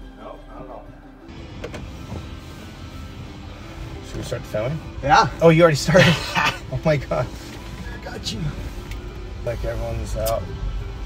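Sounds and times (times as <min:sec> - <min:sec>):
quiet background music: 0:00.0 - 0:11.0
car cabin rumble: 0:01.3 - 0:11.0.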